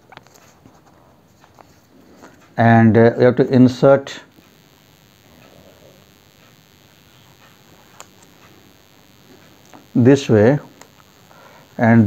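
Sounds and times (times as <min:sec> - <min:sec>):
low steady hiss: 0:02.6 - 0:12.0.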